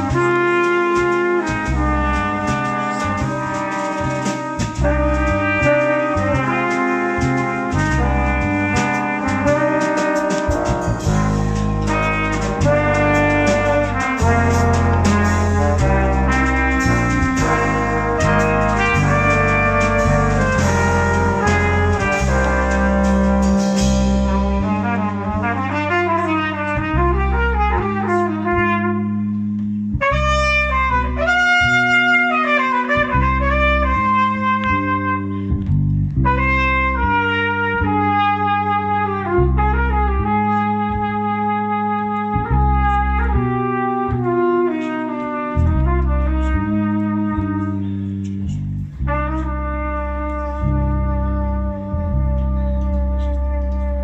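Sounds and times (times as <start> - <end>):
cymbals: 0.0 - 35.6
bass guitar: 0.0 - 54.0
jazz brass band playing: 0.0 - 54.0
solo horn line: 0.0 - 54.0.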